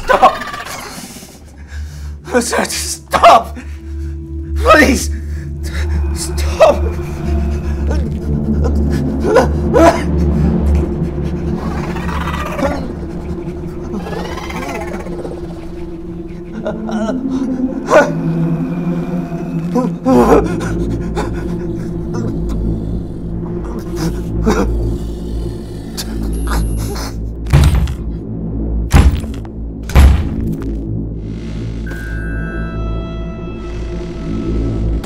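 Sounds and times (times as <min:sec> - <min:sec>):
low rumbling drone: 0:00.7 - 0:35.0
wavering moaning cries: 0:05.4 - 0:26.9.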